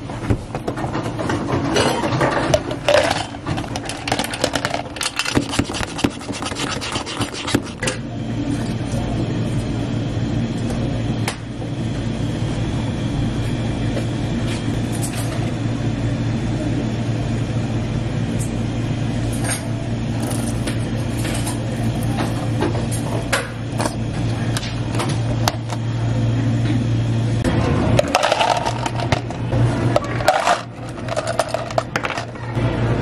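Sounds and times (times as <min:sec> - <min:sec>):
low machine hum: 0:00.0 - 0:33.0
ice cubes clattering into cup: 0:28.0 - 0:29.3, 0:30.1 - 0:32.3.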